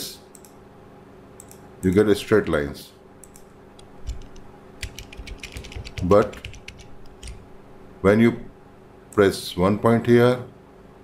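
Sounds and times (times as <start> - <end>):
mouse and keyboard clicks: 3.2 - 7.4.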